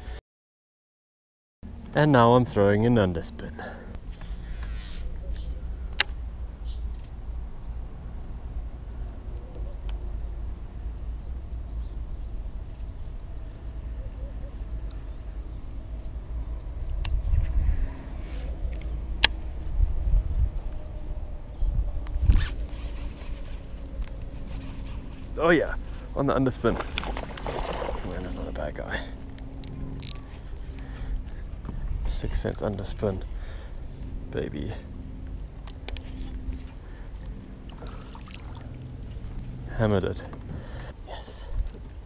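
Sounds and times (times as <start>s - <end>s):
low rumble: 1.7s - 40.9s
fishing reel cranking: 22.3s - 26.2s.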